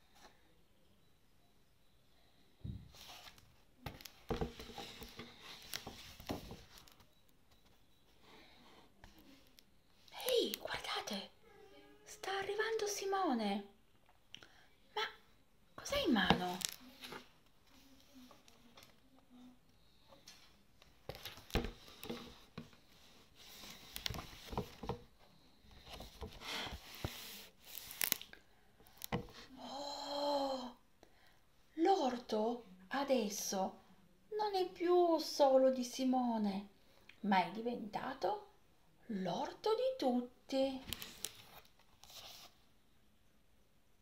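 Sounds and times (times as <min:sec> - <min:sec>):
paper rustling: 0:23.1 - 0:25.0.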